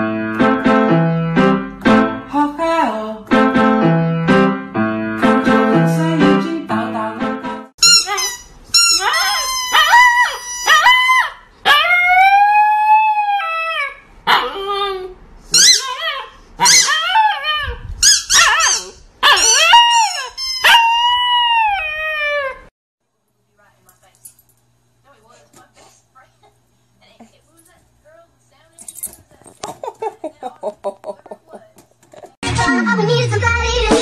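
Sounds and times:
puppy howling and yipping: 7.9 - 22.7.

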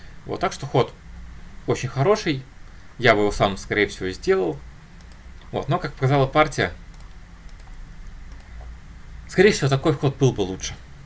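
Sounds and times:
faint low hum: 0.0 - 11.0
computer mouse clicks: 5.0 - 5.6, 6.9 - 8.8.

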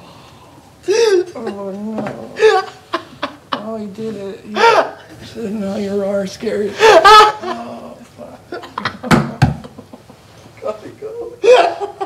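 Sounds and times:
man laughing: 2.4 - 3.8, 6.7 - 10.1, 11.4 - 12.0.

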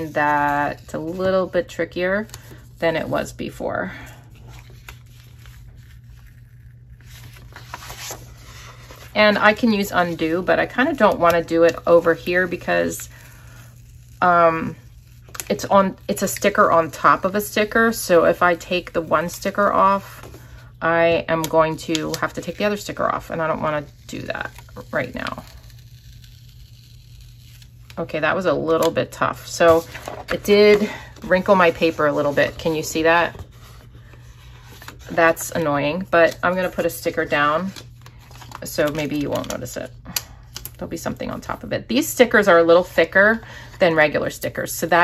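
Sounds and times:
low steady hum: 0.0 - 45.0.

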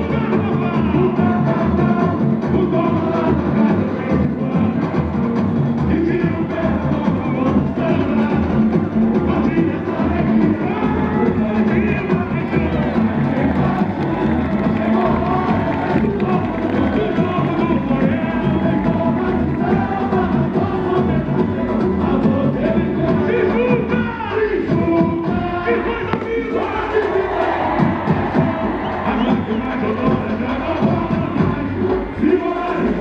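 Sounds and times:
crowd cheering: 0.0 - 33.0
people singing samba: 0.0 - 33.0
steady drum beat: 0.0 - 33.0.

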